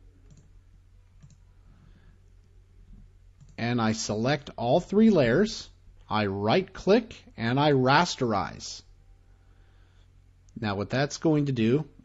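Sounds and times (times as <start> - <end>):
low steady hum: 0.0 - 12.0
computer mouse clicks: 0.2 - 0.5, 1.1 - 1.4, 3.4 - 3.6.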